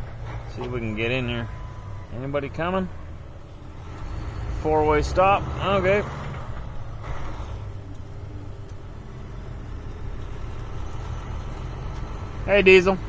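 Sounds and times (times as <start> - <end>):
truck diesel engine rumble: 0.0 - 13.0.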